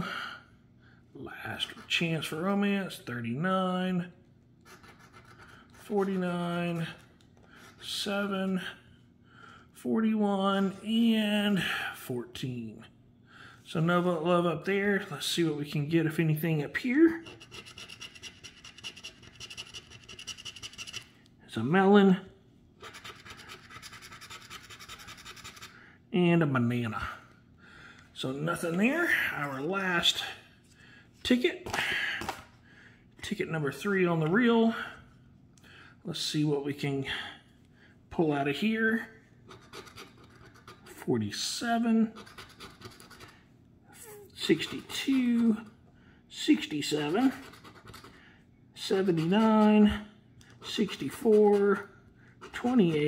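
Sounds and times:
scratching lottery ticket: 4.6s - 8.1s, 17.2s - 21.1s, 22.8s - 25.8s, 39.5s - 41.0s, 42.0s - 43.4s, 44.4s - 45.7s, 46.5s - 48.2s, 48.8s - 50.0s, 50.6s - 53.0s.

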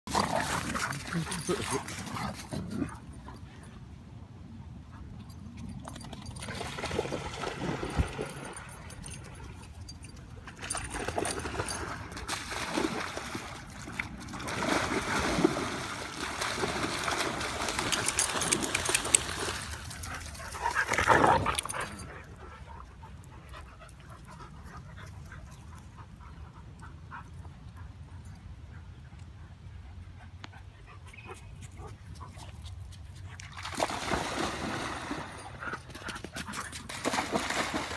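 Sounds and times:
dogs splashing in water: 0.1s - 2.6s, 5.9s - 9.6s, 10.5s - 22.1s, 33.4s - 37.9s.

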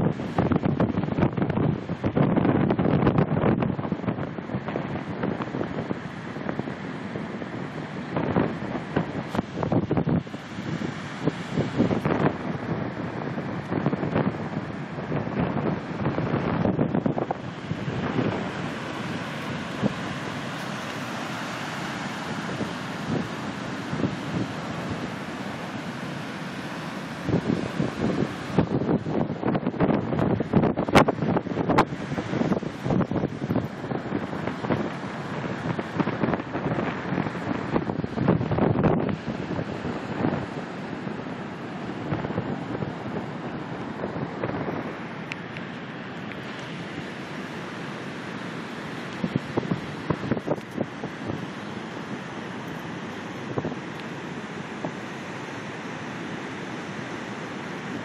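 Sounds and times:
wind buffeting microphone: 0.0s - 56.0s
ocean surf breaking: 0.0s - 58.0s.

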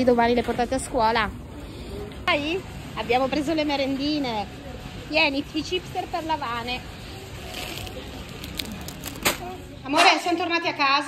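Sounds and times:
supermarket background noise: 0.0s - 11.0s
shopping cart rolling on tiles: 7.3s - 9.4s
plastic crisps bag crinkling: 7.4s - 9.5s.

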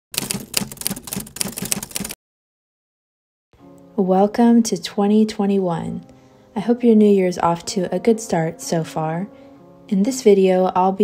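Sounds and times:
typewriter keys clacking: 0.1s - 2.2s.

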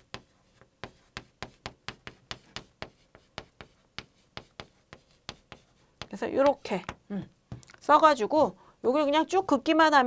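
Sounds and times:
chalk writing on chalkboard: 0.0s - 7.6s.

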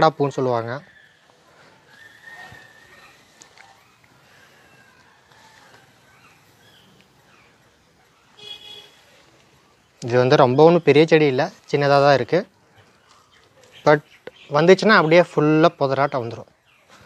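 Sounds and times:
distant bird chirps: 0.0s - 17.0s
loud bird call: 0.7s - 9.5s.

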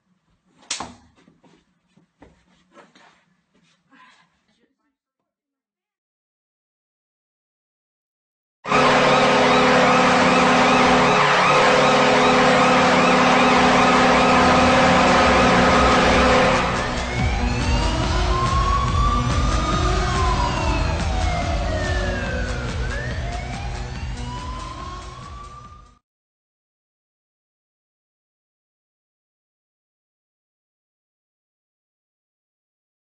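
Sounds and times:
sustained horn-like chord: 8.7s - 25.6s
loud siren-like sound effect: 8.7s - 26.0s
rising and falling pitch sweeps: 8.7s - 26.0s.

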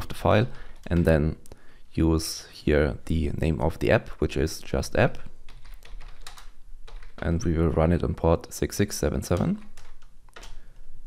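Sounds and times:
computer keyboard typing: 5.5s - 7.3s, 9.3s - 10.8s.

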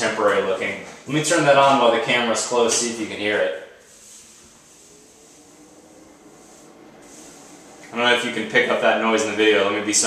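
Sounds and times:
exhaust fan running: 0.0s - 10.0s.

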